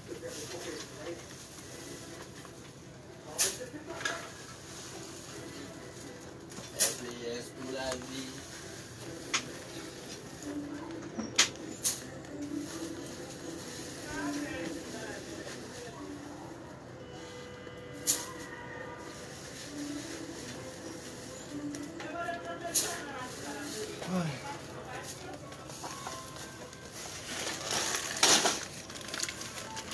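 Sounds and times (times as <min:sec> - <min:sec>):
low background voices: 0:00.0 - 0:29.9.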